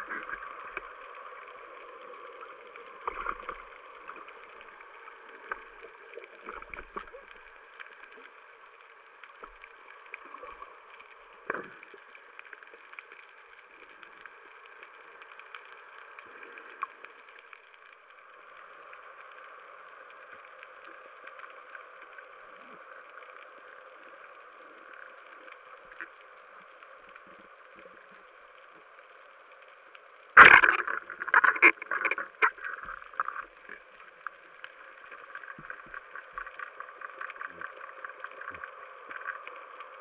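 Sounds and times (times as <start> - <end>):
muffled underwater knocks and scraping: 0.0 - 0.9, 30.4 - 33.8
faint clicks and crackles: 0.0 - 40.0
muffled underwater hiss: 0.0 - 40.0
crackly strikes: 29.6 - 40.0.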